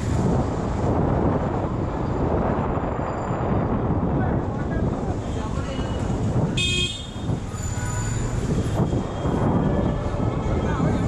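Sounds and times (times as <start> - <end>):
road rumble: 0.0 - 11.0.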